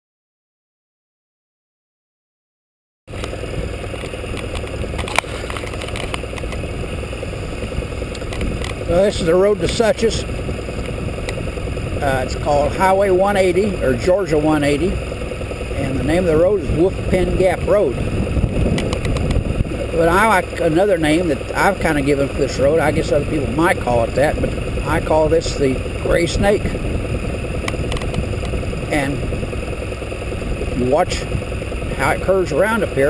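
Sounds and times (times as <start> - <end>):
road and wind noise: 3.1 - 33.0
scooter engine running: 3.1 - 33.0
sharp click: 18.8 - 19.4.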